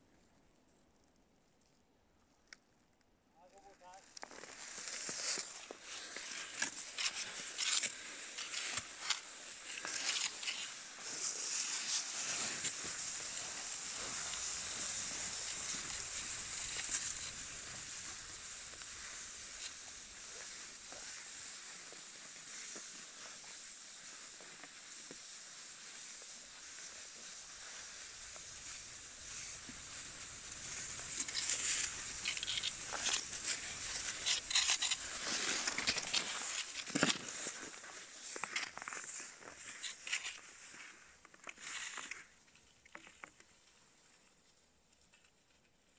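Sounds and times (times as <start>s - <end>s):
crunching ski strides and poles: 3.5s - 45.9s
skis gliding over snow: 3.6s - 45.9s.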